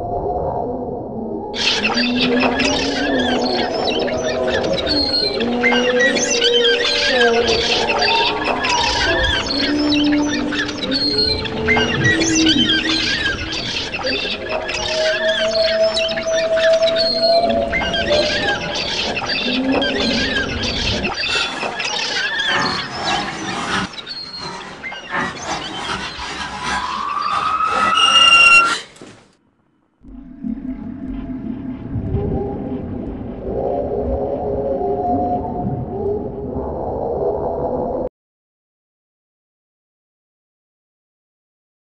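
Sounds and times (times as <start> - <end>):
dark ambient drone: 0.0 - 29.0, 30.0 - 38.0
birds chirping and squawking: 1.6 - 29.2
low rumble: 30.0 - 38.1.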